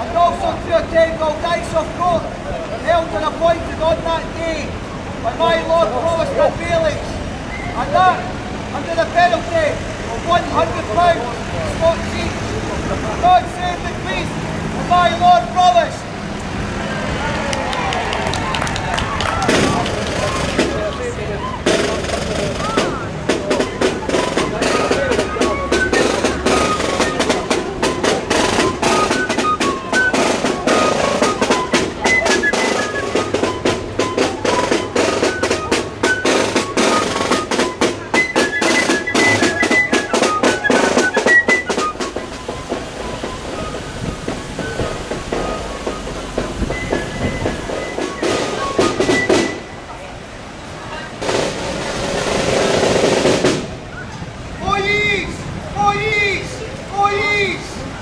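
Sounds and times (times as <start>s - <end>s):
crowd chatter: 0.0s - 58.0s
snare drum beating: 19.3s - 21.0s, 21.6s - 49.7s, 51.2s - 53.8s
high tune playing: 21.6s - 50.3s.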